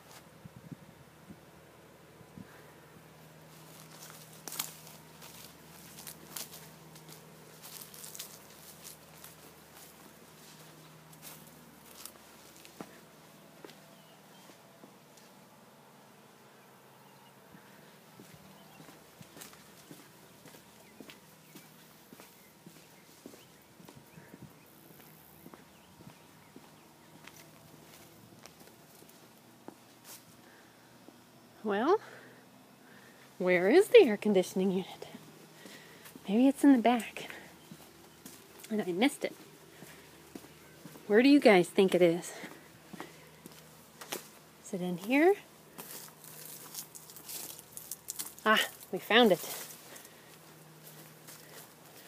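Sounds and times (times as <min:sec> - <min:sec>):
faint low hum: 0:00.0 - 0:52.0
footsteps of person walking: 0:03.4 - 0:15.4, 0:17.5 - 0:31.2, 0:34.6 - 0:52.0.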